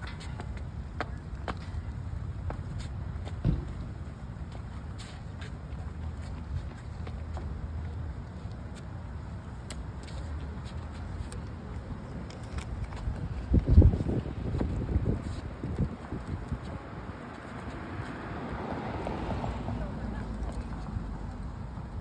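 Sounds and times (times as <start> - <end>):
city traffic rumble: 0.0 - 22.0
dull thump: 3.4 - 3.8.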